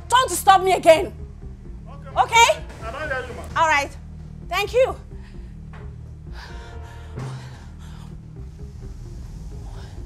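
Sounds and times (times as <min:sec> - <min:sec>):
low background music: 0:00.0 - 0:10.0.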